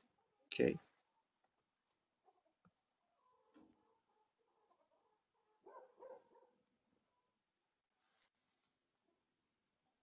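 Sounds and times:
faint dog barking: 2.2 - 7.4.

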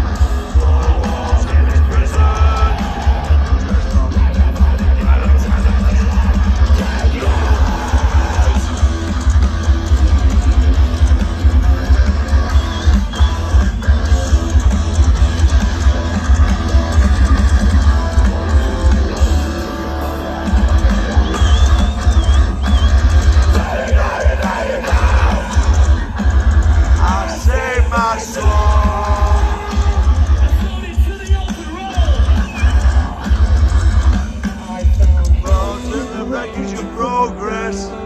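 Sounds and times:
metal band playing live: 0.0 - 38.0.

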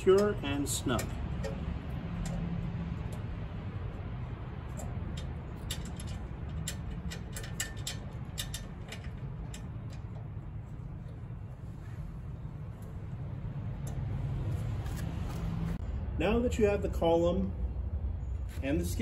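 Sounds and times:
low background rumble: 0.0 - 16.2
allen key clicking on screws: 0.1 - 3.3, 4.6 - 10.4.

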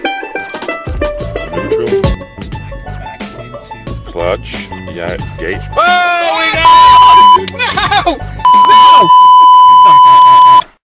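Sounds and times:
censor bleep: 6.6 - 7.4, 8.5 - 10.6.

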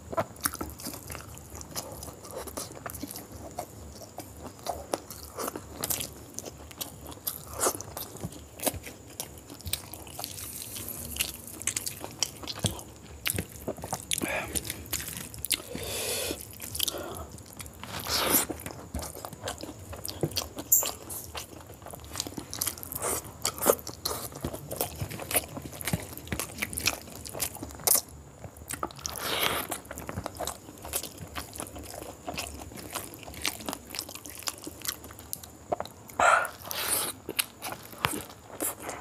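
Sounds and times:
wet chewing and lip-smacking: 0.1 - 39.0.

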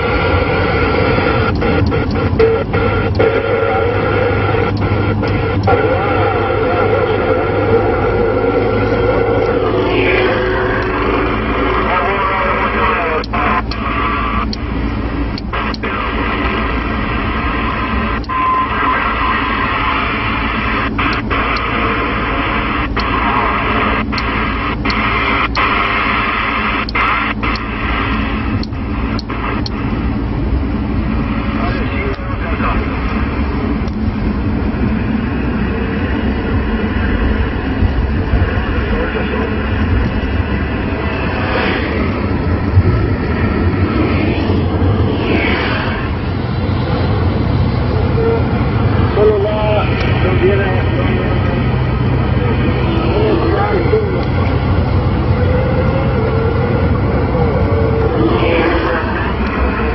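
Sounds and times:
faint garbled radio voices: 0.0 - 59.9
radio hiss and static: 0.0 - 59.9
sharp crackling clicks: 1.3 - 5.8, 12.6 - 14.7, 15.3 - 16.6, 20.9 - 21.8, 22.8 - 29.9, 33.8 - 34.2.

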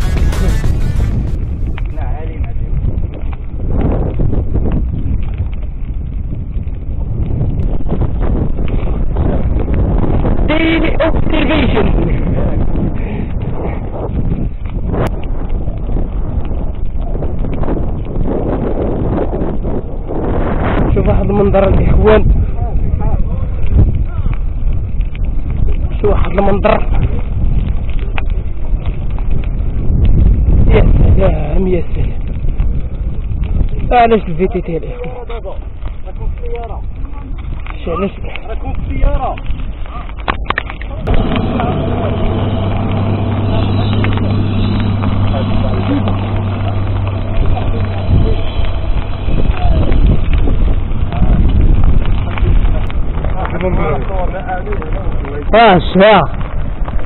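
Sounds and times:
bike rattles and clicks: 0.0 - 57.0
wind rumble on microphone: 0.0 - 57.0.

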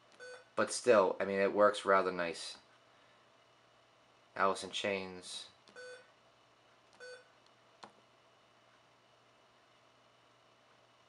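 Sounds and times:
short key-press beep: 0.2 - 0.4, 5.7 - 6.1, 7.0 - 7.3.

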